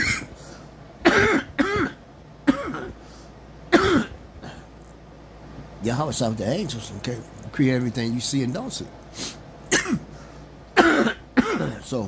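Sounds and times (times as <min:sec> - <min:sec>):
man coughing: 0:00.0 - 0:00.4, 0:01.0 - 0:03.0, 0:03.7 - 0:04.7, 0:09.7 - 0:10.2, 0:10.8 - 0:11.9.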